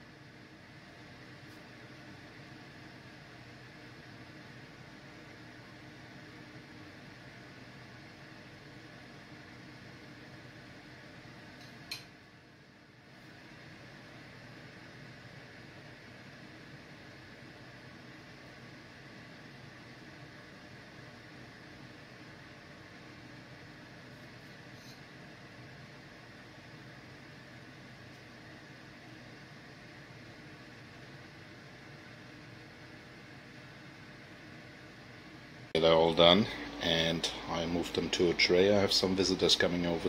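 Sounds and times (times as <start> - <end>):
fan whirring: 0.0 - 40.0.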